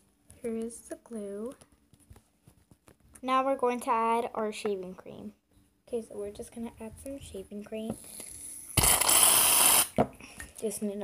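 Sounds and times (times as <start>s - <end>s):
aerosol can spraying hiss: 8.8s - 10.0s.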